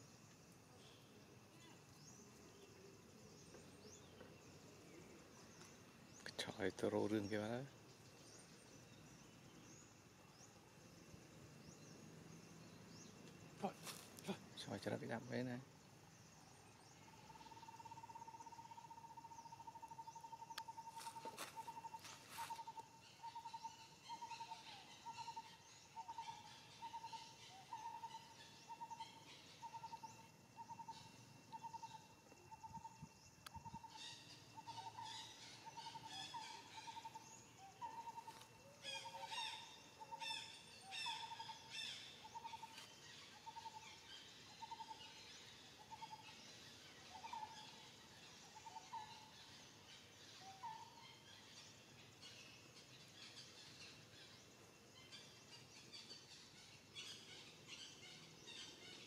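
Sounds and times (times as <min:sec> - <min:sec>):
other birds chirping: 0:00.0 - 0:59.0.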